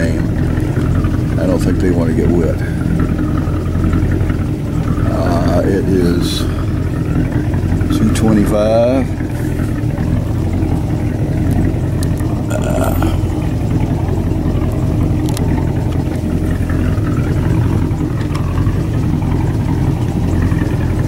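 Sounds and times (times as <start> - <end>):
boat engine running: 0.0 - 21.0.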